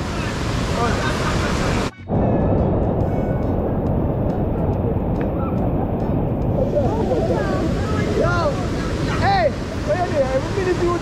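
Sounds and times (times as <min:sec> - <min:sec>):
river water rushing over rocks: 0:00.0 - 0:01.9, 0:04.4 - 0:11.0
wind on microphone: 0:00.0 - 0:11.0.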